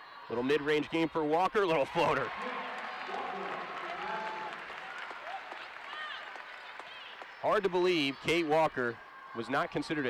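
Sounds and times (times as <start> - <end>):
crowd applauding and cheering: 1.9 - 8.4.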